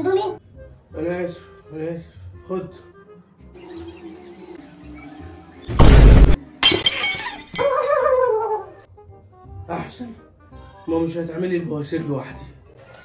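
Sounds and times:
ceramic bowl smashing: 5.8 - 8.1
breaking pieces clinking: 6.6 - 8.0.

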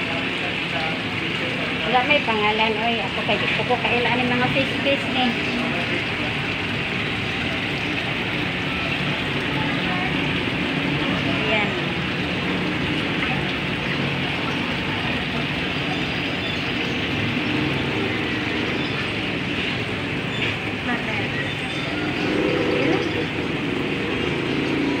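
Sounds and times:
steady background noise: 0.0 - 25.0.

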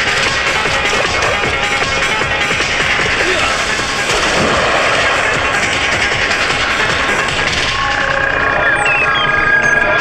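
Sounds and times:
loud continuous rushing noise: 0.0 - 8.6
dramatic background music: 0.0 - 10.0.

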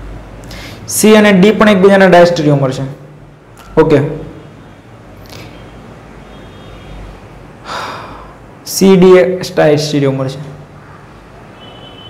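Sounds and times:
man's short breath: 7.6 - 8.5.

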